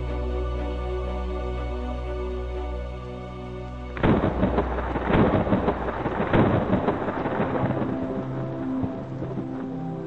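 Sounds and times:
background music: 0:00.0 - 0:10.0
loud crackling rumble: 0:03.8 - 0:10.0.

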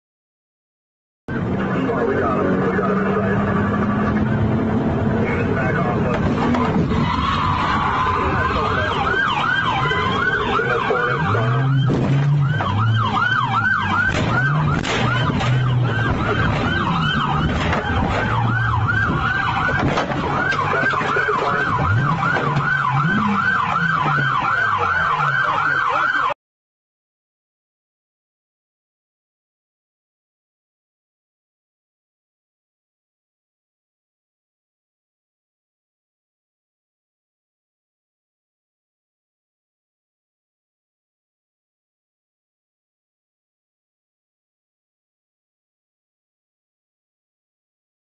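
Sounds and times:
siren yelping: 0:01.3 - 0:26.4
traffic and engine noise: 0:01.3 - 0:26.4.

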